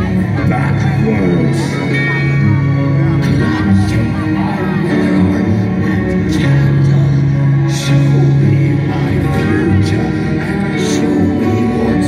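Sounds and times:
metal band playing live: 0:00.0 - 0:12.0
sustained keyboard chords: 0:00.0 - 0:12.0.

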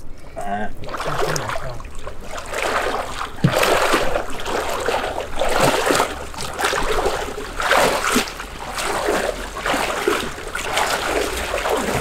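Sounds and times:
water splashing from wading: 0:00.7 - 0:12.0.

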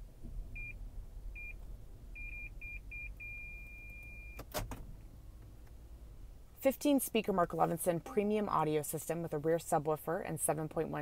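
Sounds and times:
parking sensor beeping: 0:00.5 - 0:04.5.

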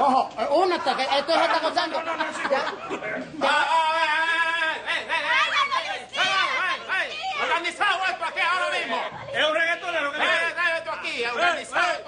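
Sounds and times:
people talking and shouting: 0:00.0 - 0:12.0.

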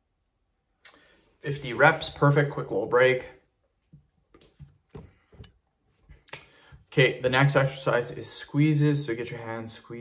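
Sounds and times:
man breathing: 0:06.4 - 0:06.9.

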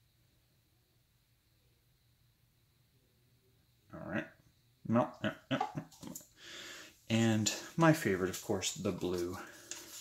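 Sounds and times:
man hissing softly: 0:06.3 - 0:10.0.

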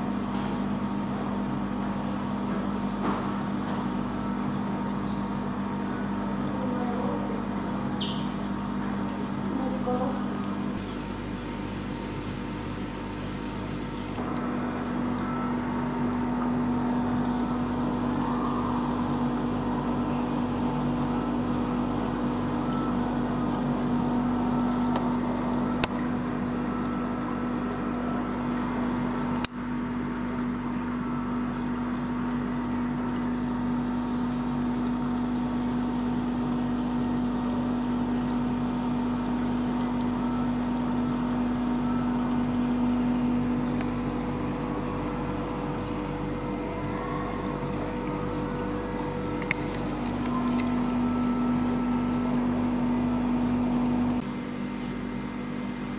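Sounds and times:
machine hum: 0:00.0 - 0:55.9.

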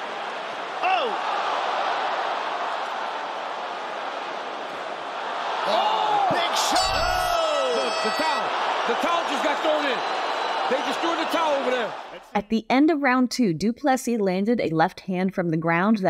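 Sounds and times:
arena crowd noise: 0:00.0 - 0:12.5
people shouting: 0:00.8 - 0:02.3, 0:05.5 - 0:12.3.

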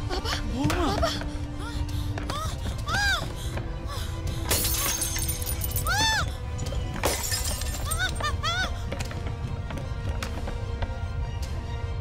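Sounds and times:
dramatic music with swooping tones: 0:00.0 - 0:12.0
objects shattering: 0:04.5 - 0:06.0, 0:06.6 - 0:08.4.

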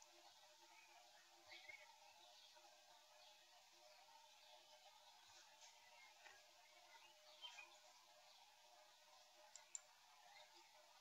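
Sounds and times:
computer mouse clicks: 0:09.5 - 0:09.9.

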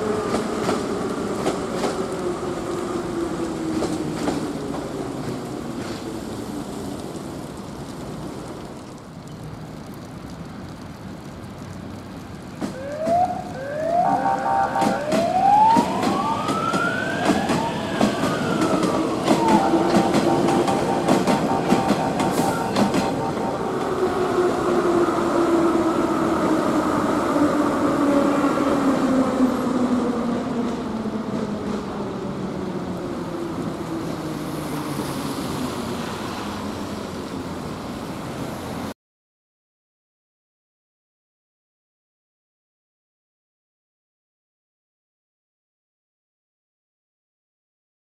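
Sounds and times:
wheels clicking over rail joints: 0:03.3 - 0:24.3.

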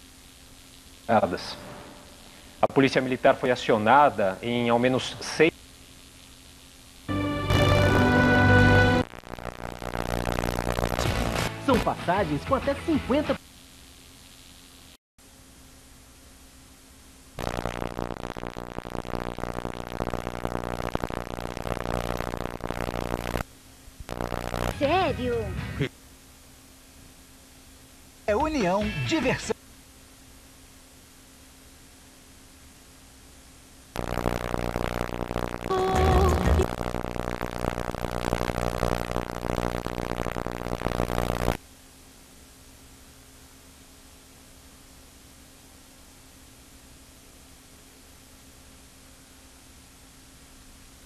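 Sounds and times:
faint hiss: 0:00.0 - 0:07.1
buzzy synthesizer music: 0:07.1 - 0:11.7.

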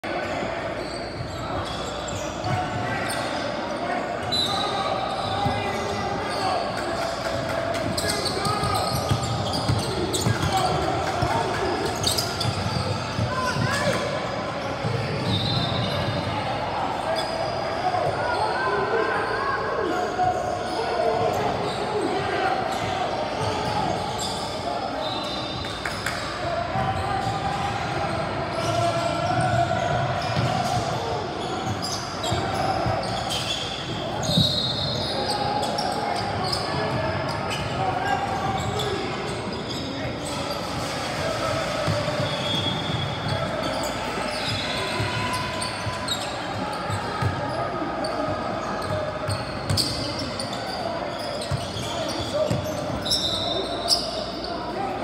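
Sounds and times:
voices echoing in gym: 0:00.0 - 0:55.0.

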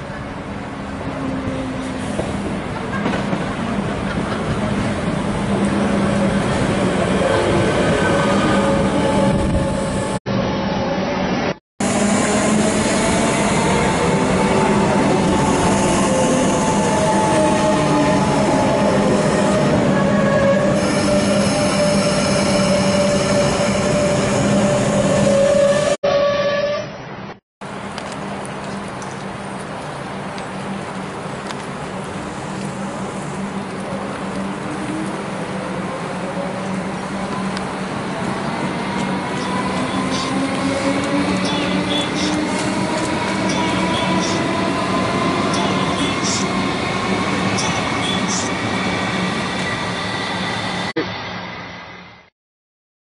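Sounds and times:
train running hum: 0:27.6 - 0:52.3.

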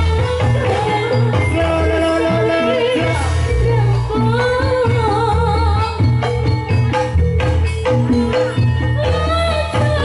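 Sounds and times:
woman singing ornamented melody: 0:00.0 - 0:06.4
gamelan music: 0:00.0 - 0:10.0.

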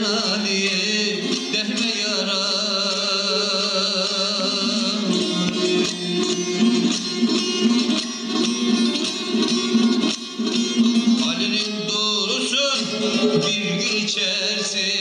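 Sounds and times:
long-necked lute plucked melody: 0:00.0 - 0:15.0.

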